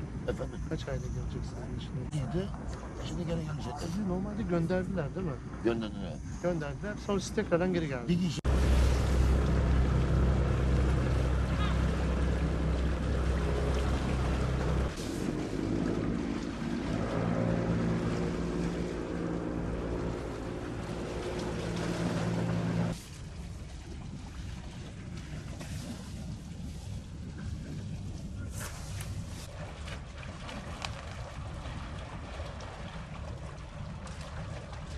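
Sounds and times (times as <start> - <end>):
boat engines droning: 0.0 - 34.9
water: 0.0 - 34.9
wind: 0.0 - 34.9.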